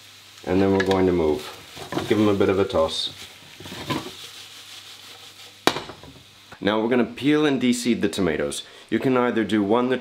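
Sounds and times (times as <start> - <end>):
onions sizzling in a pan: 0.0 - 10.0
spatula stirring and scraping: 1.4 - 2.4, 3.0 - 5.6.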